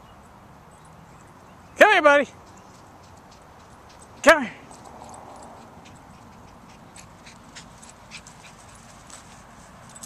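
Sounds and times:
dog panting: 4.8 - 9.5.

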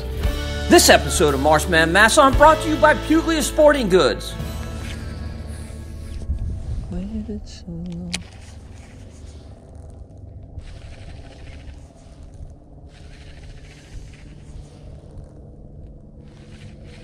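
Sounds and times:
steady low hum: 0.0 - 17.0
wind buffeting microphone: 5.4 - 17.0
fishing reel cranking: 8.3 - 15.2.

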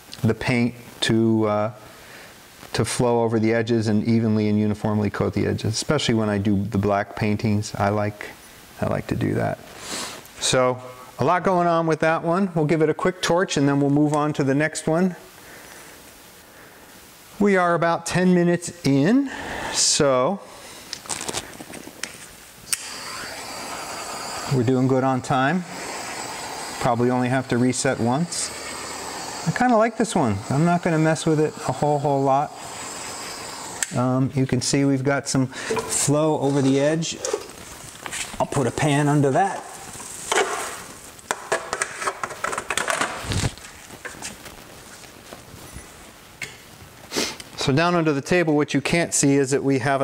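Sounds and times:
torch flame hissing: 18.9 - 42.5, 47.0 - 47.6
torch ignition click: 22.7 - 34.0.

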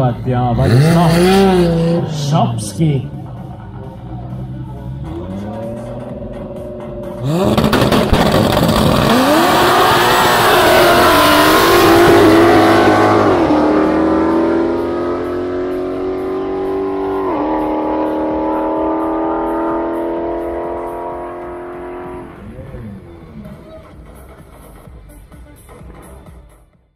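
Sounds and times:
race car engines accelerating: 0.0 - 24.9.

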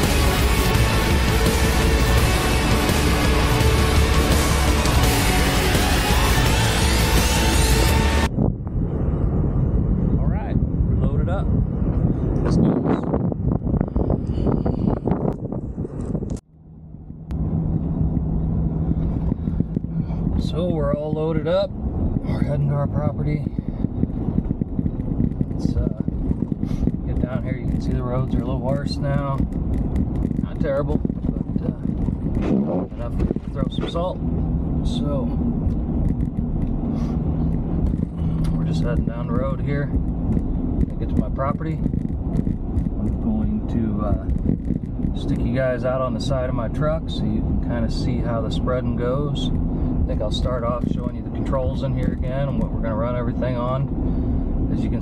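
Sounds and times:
outdoor noise on microphone: 0.0 - 55.0
road noise: 0.0 - 55.0
truck engine hum: 0.0 - 55.0.

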